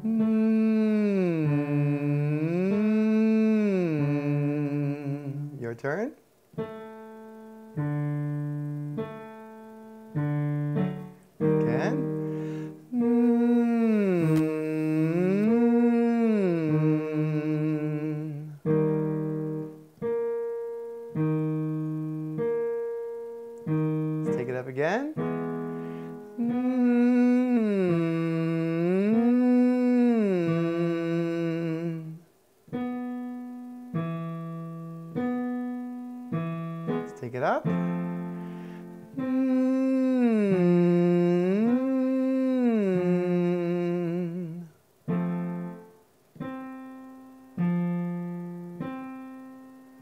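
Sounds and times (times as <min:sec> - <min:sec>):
man humming a gliding scale: 0:00.0 - 0:05.7, 0:11.4 - 0:19.8, 0:26.1 - 0:32.3, 0:37.0 - 0:45.9
rising vocal slide: 0:00.0 - 0:05.7, 0:11.6 - 0:19.7, 0:26.1 - 0:32.2, 0:38.6 - 0:44.8
piano chords: 0:00.0 - 0:50.0.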